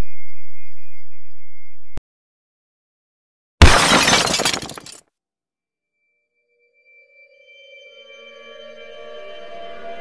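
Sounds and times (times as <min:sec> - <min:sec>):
glass shattering: 0:03.6 - 0:05.0
drone of held musical tones: 0:06.6 - 0:10.0.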